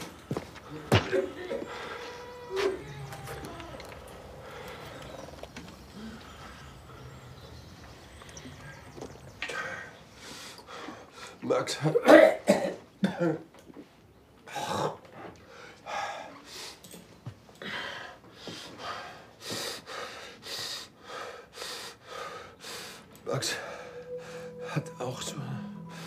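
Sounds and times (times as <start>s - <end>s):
person coughing: 12.1s - 13.4s.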